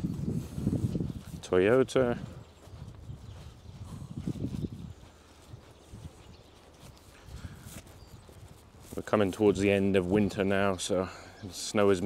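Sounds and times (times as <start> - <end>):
footsteps on slushy pavement: 0.4 - 10.5.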